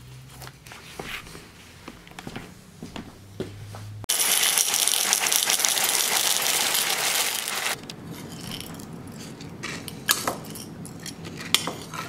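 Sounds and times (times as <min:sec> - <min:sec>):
cereal rattling into a bowl: 0:04.1 - 0:07.8.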